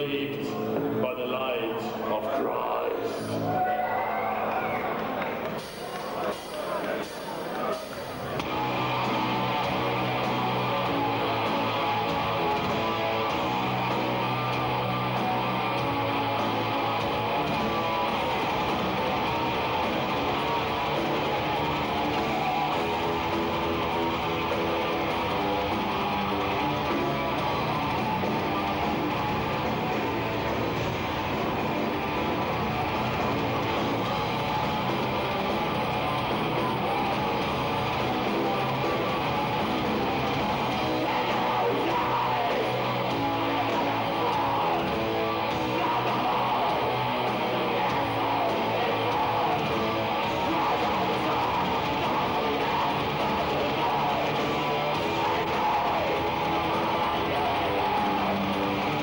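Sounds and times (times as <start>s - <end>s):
distorted electric guitars: 0.0s - 59.0s
drums: 0.0s - 59.0s
bass guitar: 8.2s - 59.0s.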